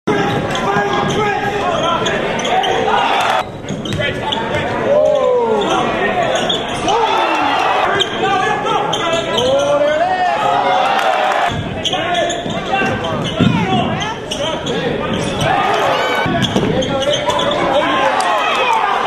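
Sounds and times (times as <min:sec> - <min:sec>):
crowd calling and shouting: 0:00.0 - 0:19.0
basketball bouncing on hardwood: 0:12.4 - 0:14.0.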